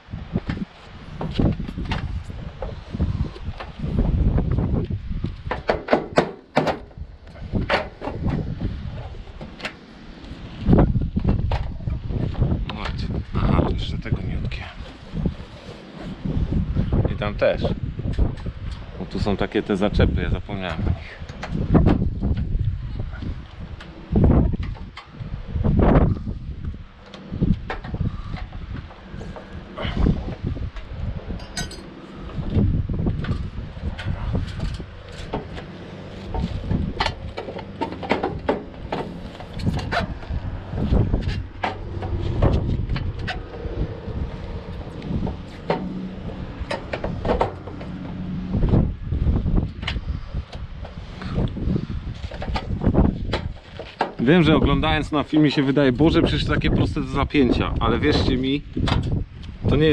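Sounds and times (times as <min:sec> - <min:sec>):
gutter clips knocking and clicking: 0:05.4 - 0:07.0
low steady rumble: 0:06.9 - 0:59.9.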